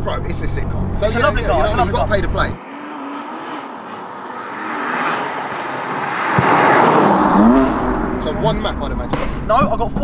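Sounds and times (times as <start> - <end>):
car accelerating past: 0.9 - 9.5.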